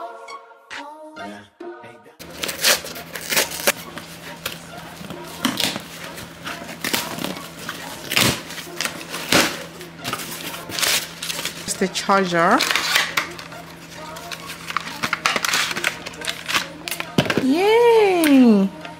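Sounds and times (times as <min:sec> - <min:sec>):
cardboard scraping: 0:02.2 - 0:11.7
packing tape ripping: 0:02.2 - 0:17.4.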